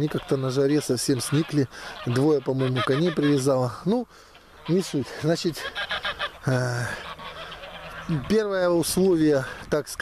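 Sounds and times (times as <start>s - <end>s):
geese honking: 0.0s - 10.0s.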